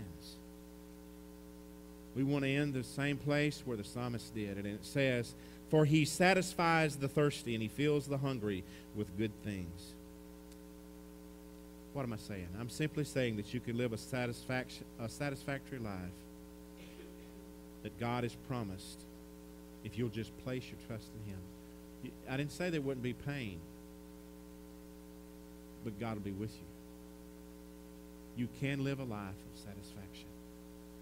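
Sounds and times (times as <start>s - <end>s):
electrical mains hum: 0.0s - 31.0s
man's voice: 19.8s - 21.4s, 25.8s - 26.7s, 28.4s - 30.3s.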